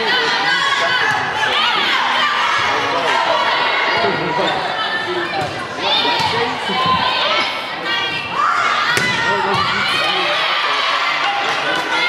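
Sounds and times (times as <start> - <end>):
crowd noise: 0.0 - 12.0
people shouting and calling: 0.0 - 12.0
volleyball being hit: 8.9 - 9.8.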